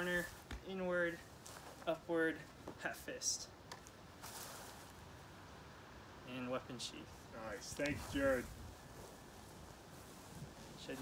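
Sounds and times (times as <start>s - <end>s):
faint outdoor hiss: 0.0s - 11.0s.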